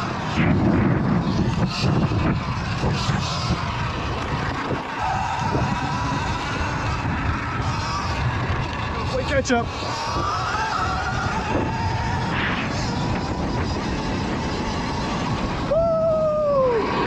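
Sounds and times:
tyres on gravel: 0.0s - 15.7s
electric motor whine: 0.0s - 17.0s
wind buffeting microphone: 0.0s - 17.0s.

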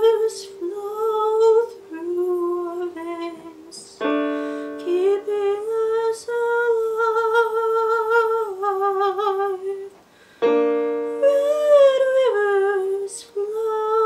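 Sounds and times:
woman singing with vibrato: 0.0s - 10.0s, 11.0s - 14.0s
piano chords on keyboard: 0.0s - 14.0s.

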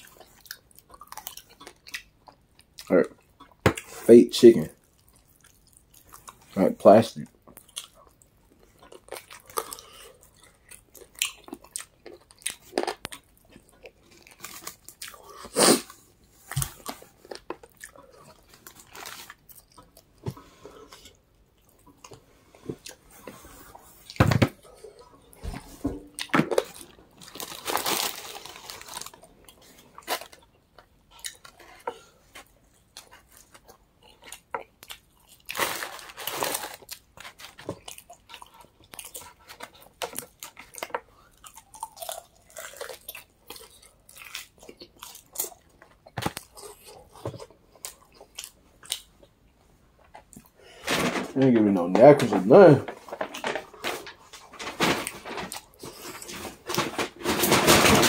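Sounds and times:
chewing crunchy fried chicken: 0.0s - 25.4s, 26.1s - 49.5s.

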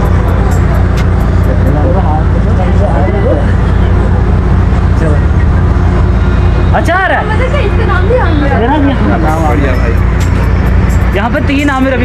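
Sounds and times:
loud low mechanical rumble: 0.0s - 12.0s.

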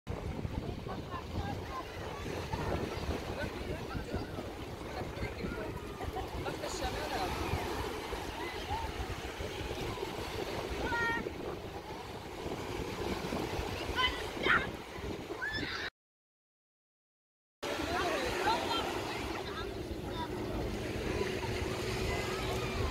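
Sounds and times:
small waves breaking on sand: 0.1s - 15.6s, 17.6s - 22.9s
babble of voices: 0.5s - 10.2s
children shouting: 15.4s - 15.9s, 17.8s - 22.9s.

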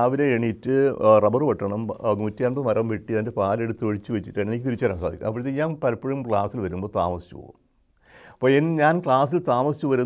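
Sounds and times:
man talking: 0.0s - 7.6s, 8.4s - 10.0s.

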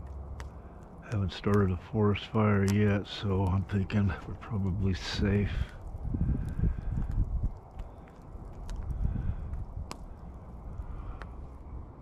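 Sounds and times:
campfire crackling: 0.0s - 12.0s
campfire pop: 0.0s - 12.0s
low rumble: 0.0s - 12.0s.

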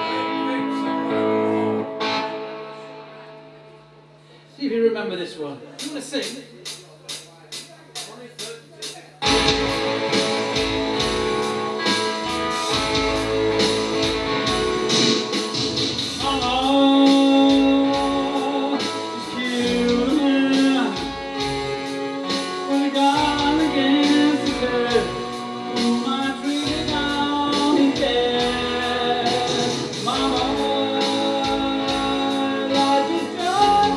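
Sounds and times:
man singing: 0.0s - 2.0s, 16.2s - 21.8s, 22.6s - 33.9s
rock song with electric guitar: 0.0s - 3.6s, 9.2s - 33.9s.

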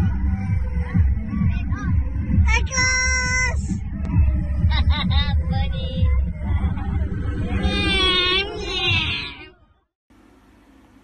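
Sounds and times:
steady low rumble: 0.0s - 9.9s.

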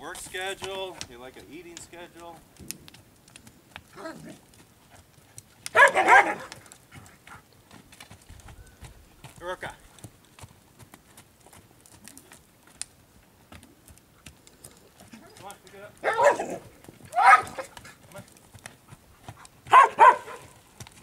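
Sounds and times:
horse hoofbeats on dirt: 0.0s - 21.0s
dog barking: 5.7s - 6.6s, 16.0s - 17.8s, 19.7s - 20.6s.

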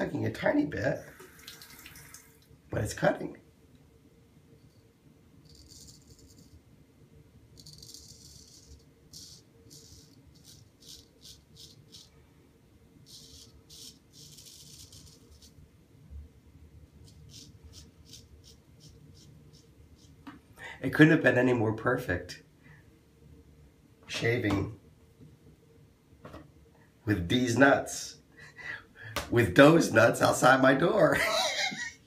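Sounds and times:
razor scraping stubble: 7.6s - 12.1s, 13.1s - 15.6s, 17.0s - 20.2s.

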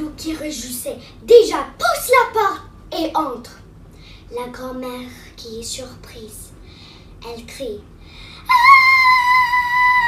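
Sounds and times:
child screaming: 8.5s - 10.0s.

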